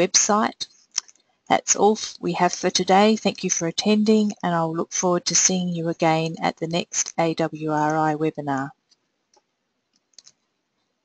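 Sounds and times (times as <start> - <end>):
faint computer mouse clicks: 8.9 - 10.4.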